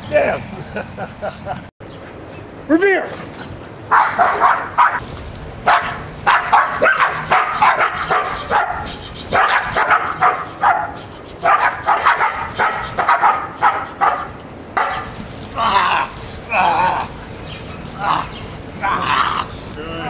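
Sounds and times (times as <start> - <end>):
dogs barking in bursts: 3.8 - 5.0, 5.6 - 20.0.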